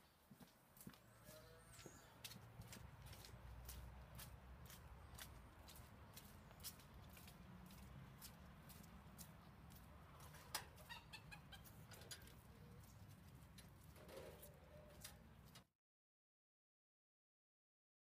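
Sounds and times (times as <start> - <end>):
footsteps on dirt path: 0.0 - 10.9
chicken clucking: 10.1 - 13.1.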